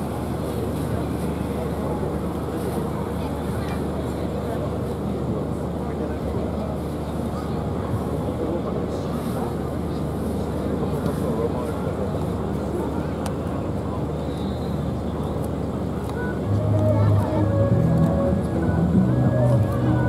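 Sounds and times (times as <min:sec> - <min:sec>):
steady outdoor rumble: 0:14.9 - 0:20.0
indistinct talking: 0:16.0 - 0:20.0.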